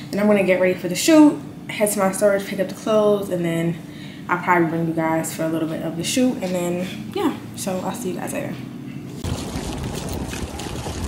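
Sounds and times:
water moving in pool: 0:09.2 - 0:11.0
wind rumbling on microphone: 0:09.2 - 0:11.0.

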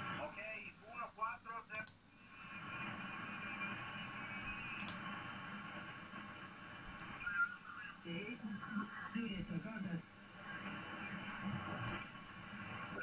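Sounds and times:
faint off-tune radio signals: 0:00.0 - 0:13.0
radio band noise hiss: 0:00.0 - 0:13.0
mouse click: 0:01.7 - 0:02.0, 0:04.8 - 0:05.0.

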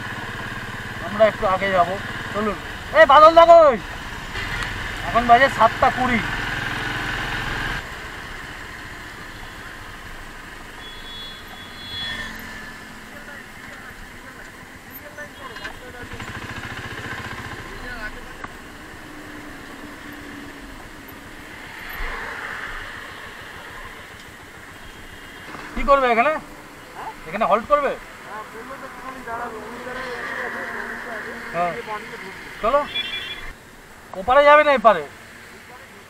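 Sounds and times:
motorcycle engine idling: 0:00.0 - 0:06.4, 0:07.2 - 0:21.5
faint voices: 0:25.7 - 0:32.9.

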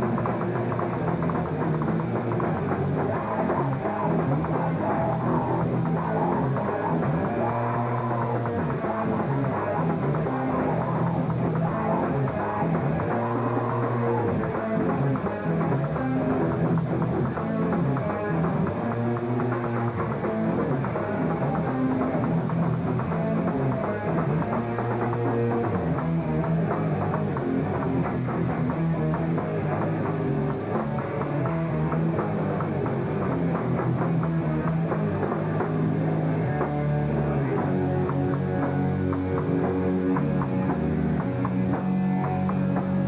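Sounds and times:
punk band playing live: 0:00.0 - 0:43.0.

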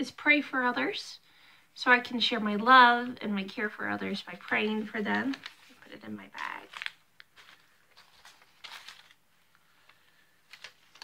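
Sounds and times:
paper rustling: 0:04.1 - 0:11.0.

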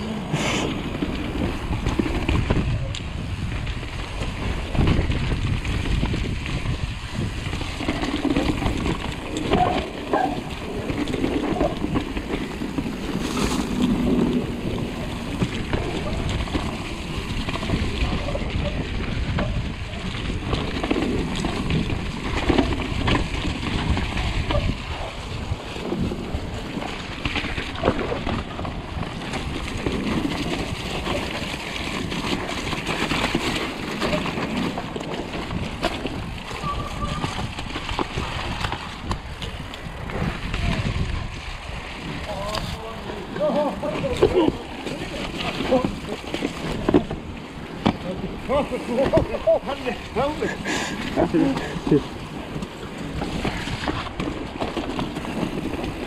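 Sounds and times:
bike rattling over roots: 0:00.0 - 0:56.0
bike tyres squelching through mud: 0:00.0 - 0:56.0.

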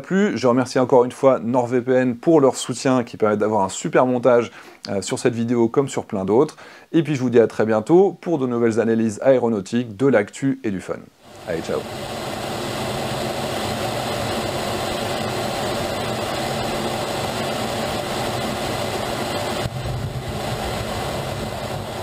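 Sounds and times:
jet engine and airflow noise: 0:11.2 - 0:22.0.

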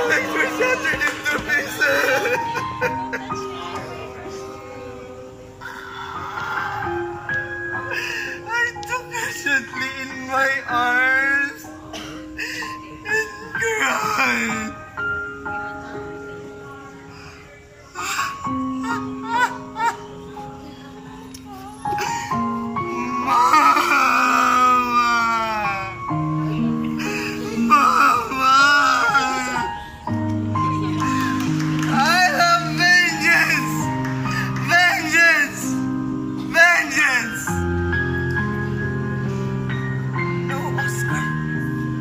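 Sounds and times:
piano music: 0:00.0 - 0:42.0
person wailing in grief: 0:22.9 - 0:26.0, 0:27.0 - 0:29.9.

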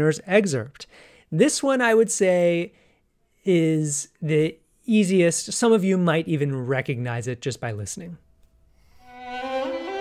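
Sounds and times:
bowed strings with violin melody: 0:08.8 - 0:10.0.

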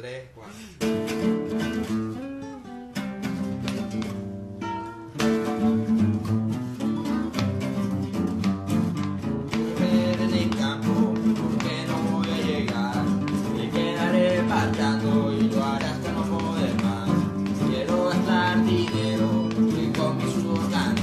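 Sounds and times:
acoustic guitar strumming: 0:00.8 - 0:21.0.

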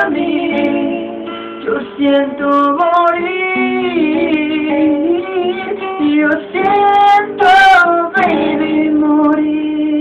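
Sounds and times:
strummed acoustic guitar: 0:00.0 - 0:10.0
man singing a ballad: 0:01.6 - 0:10.0.

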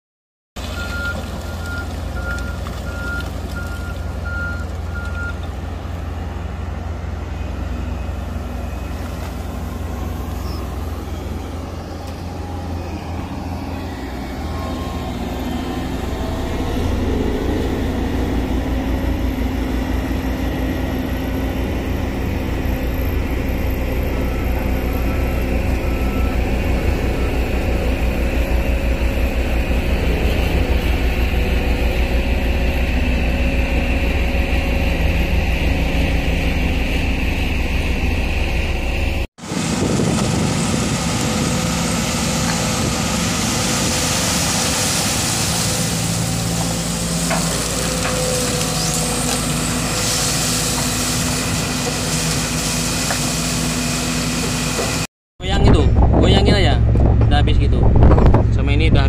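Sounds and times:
heavy diesel engines running: 0:00.6 - 0:59.0.

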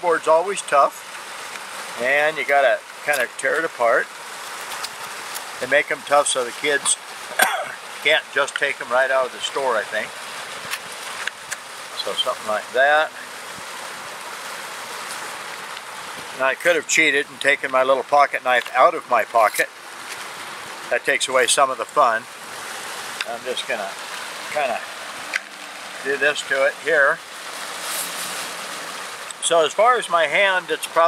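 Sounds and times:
waterfalls spilling into pond: 0:00.0 - 0:31.0
plastic packaging rustle: 0:27.5 - 0:28.8.

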